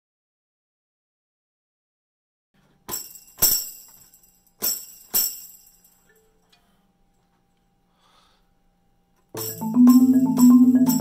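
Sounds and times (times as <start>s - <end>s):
tambourine jingle hits: 2.8s - 6.2s, 9.4s - 11.0s.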